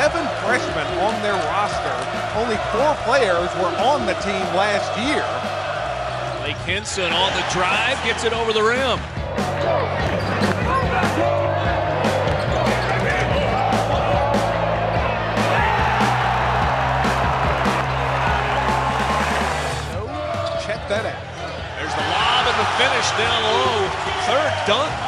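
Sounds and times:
crowd noise: 0.0 - 25.0
music with steady bass line: 9.1 - 20.0.

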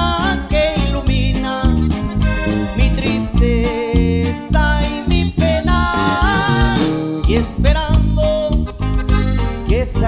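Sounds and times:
acoustic guitar: 0.0 - 10.0
button accordion melody: 0.0 - 10.0
drum kit steady beat: 0.0 - 10.0
electric bass: 0.0 - 10.0.

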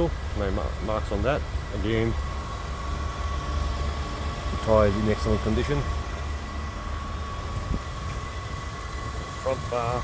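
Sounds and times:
faint high whine: 0.0 - 10.0
low background rumble: 0.0 - 10.0.

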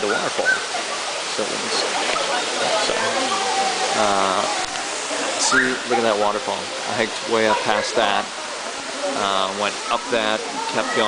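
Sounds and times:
people's voices: 0.0 - 11.0
waterfall pouring into pool: 0.0 - 11.0.

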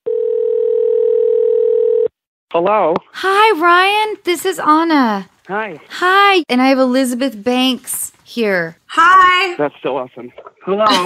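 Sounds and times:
telephone ringback tone: 0.0 - 2.1.

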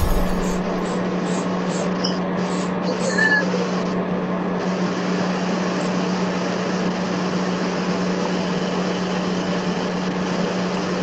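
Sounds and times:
machine hum with hiss: 0.0 - 1.7.

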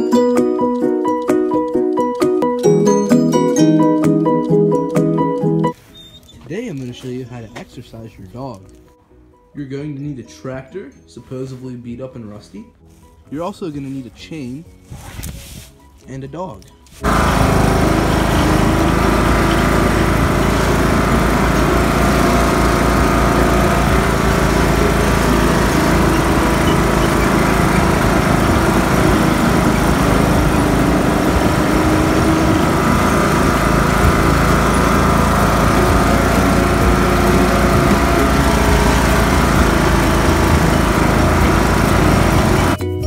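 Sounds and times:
tractor engine running: 17.0 - 42.8.

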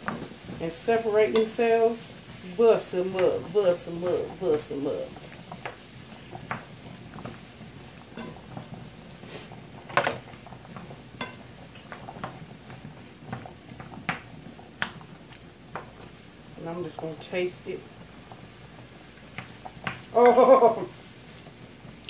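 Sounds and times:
wooden spoon stirring in skillet: 0.0 - 22.0
spoon tapping and scraping pan: 1.2 - 1.7, 8.1 - 8.8, 9.8 - 16.0.

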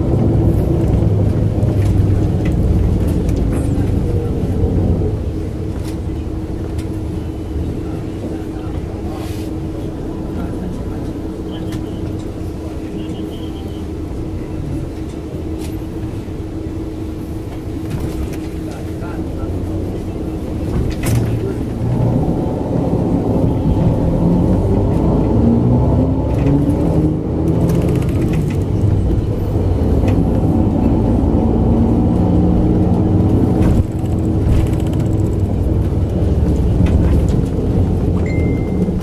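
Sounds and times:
constant hum: 0.0 - 39.0
tram wheels rumbling on rails: 0.0 - 39.0.

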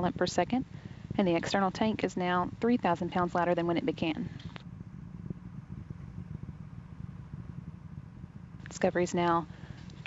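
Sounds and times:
distant rocket engines rumbling: 0.0 - 10.0.

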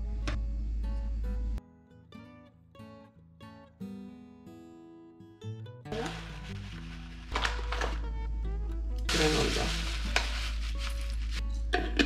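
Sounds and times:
soft music: 0.0 - 12.0
granola pouring into bowl: 5.9 - 8.0, 9.1 - 11.4
plastic bag crinkling: 5.9 - 8.0, 9.1 - 11.4.

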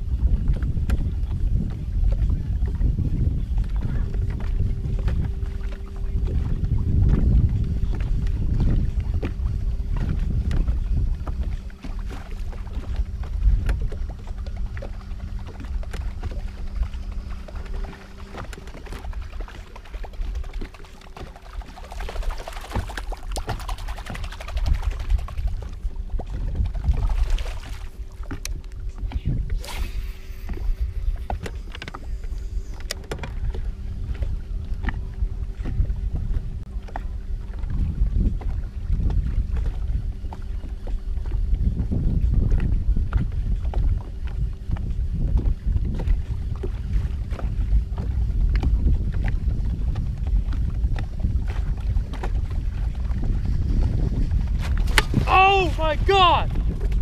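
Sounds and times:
faint steady hum: 0.0 - 57.0
water lapping on boat hull: 0.0 - 57.0
wind rumbling on microphone: 0.0 - 57.0.

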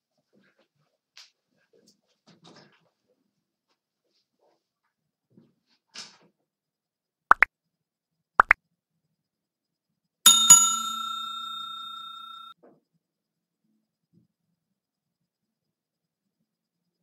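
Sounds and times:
notification bell ringing: 10.3 - 12.5.

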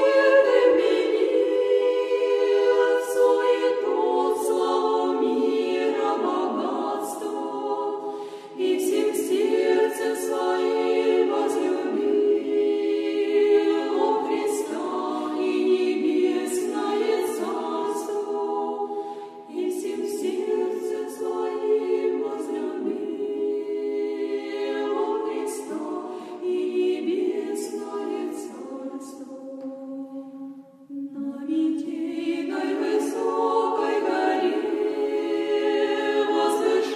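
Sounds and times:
women's choir singing a cappella: 0.0 - 36.9.

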